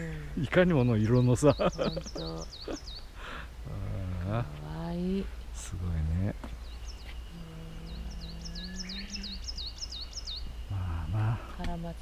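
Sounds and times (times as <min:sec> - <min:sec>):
songbird singing swooping notes: 0:01.0 - 0:03.2, 0:06.5 - 0:11.9.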